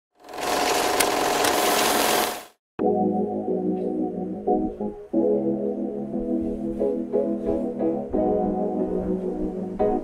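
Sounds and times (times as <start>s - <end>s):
whirring mechanical noise: 0.2s - 2.6s.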